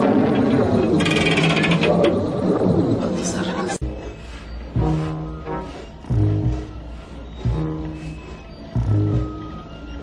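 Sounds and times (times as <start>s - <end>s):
warbling mechanical drone: 0.0s - 10.0s.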